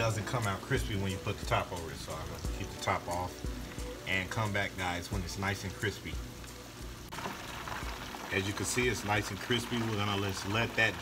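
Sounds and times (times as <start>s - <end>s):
hot oil bubbling and sizzling: 0.0s - 11.0s.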